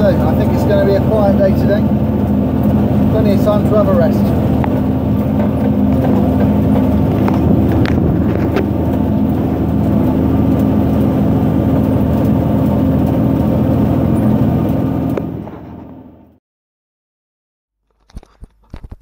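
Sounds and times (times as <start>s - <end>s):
tractor engine running: 0.0s - 16.4s.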